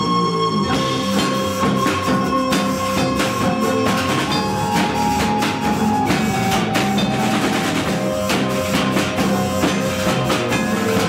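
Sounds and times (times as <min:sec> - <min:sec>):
live rock band playing: 0:00.0 - 0:11.0
snare and cymbal hits: 0:00.8 - 0:11.0.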